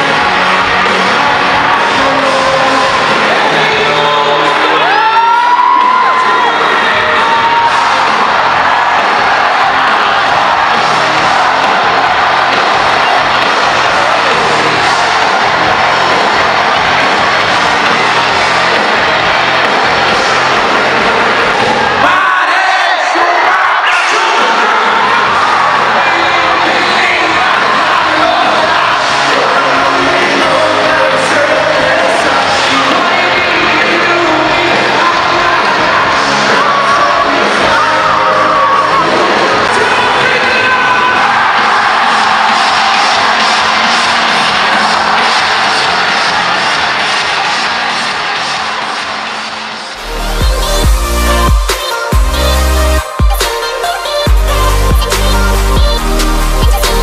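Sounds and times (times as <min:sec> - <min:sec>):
crowd cheering and whooping: 0:00.0 - 0:57.0
live band music: 0:50.0 - 0:57.0.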